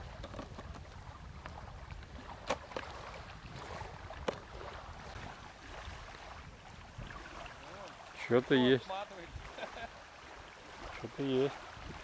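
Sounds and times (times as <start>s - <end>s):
low wind rumble: 0.0s - 12.0s.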